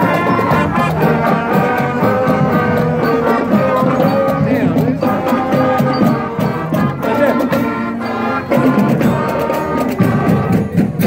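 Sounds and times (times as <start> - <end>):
drumline beat: 0.0 - 11.0
marching band brass: 0.0 - 11.0.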